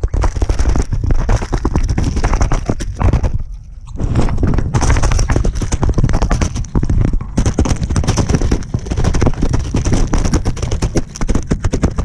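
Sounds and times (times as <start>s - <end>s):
ducks pecking in plastic bowl: 0.0s - 12.0s.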